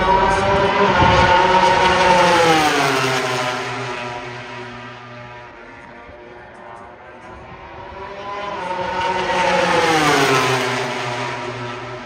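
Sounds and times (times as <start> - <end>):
motorcycle engine passing at speed: 0.2 - 5.5, 7.5 - 12.0.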